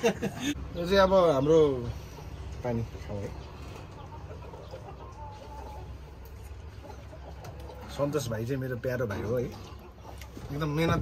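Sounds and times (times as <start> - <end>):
chickens clucking: 0.0 - 11.0
chicken drawn-out call: 3.5 - 8.2.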